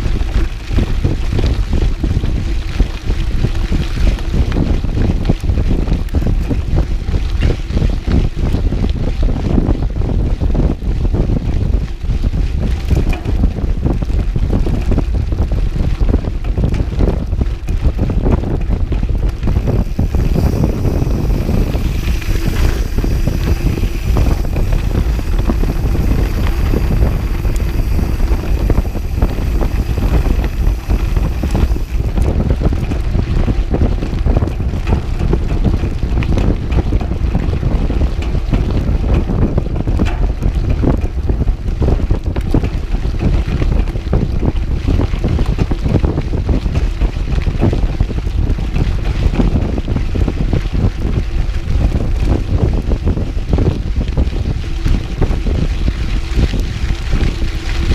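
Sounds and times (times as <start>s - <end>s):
bike clicking and rattling: 0.0s - 57.9s
wind buffeting microphone: 0.0s - 57.9s
tyres rumbling on dirt: 12.7s - 48.0s.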